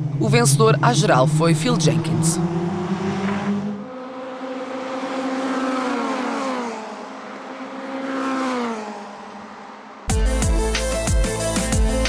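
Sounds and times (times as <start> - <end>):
race cars passing: 0.0 - 10.1.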